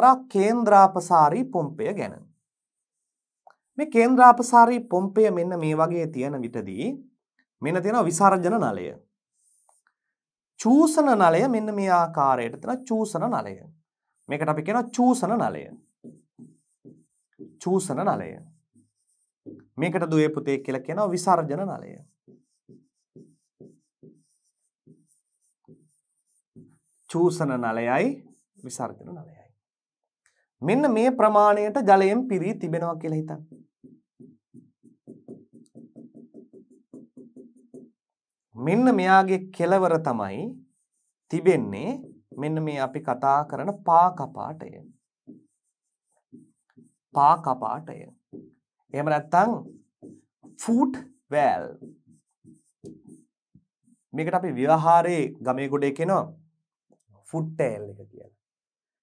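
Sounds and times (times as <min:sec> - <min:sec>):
marker pen scratching on whiteboard: 0:00.9 - 0:03.8, 0:07.8 - 0:55.6
man speaking: 0:27.1 - 0:29.4, 0:30.6 - 0:33.5, 0:49.0 - 0:49.7, 0:50.6 - 0:51.9, 0:57.2 - 0:58.3.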